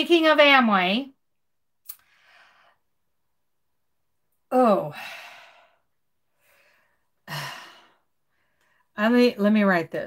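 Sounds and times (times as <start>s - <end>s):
woman sighing: 4.5s - 5.6s.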